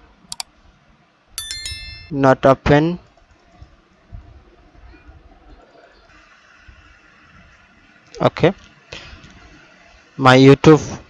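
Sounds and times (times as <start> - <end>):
bright bell ding: 1.4 - 2.4.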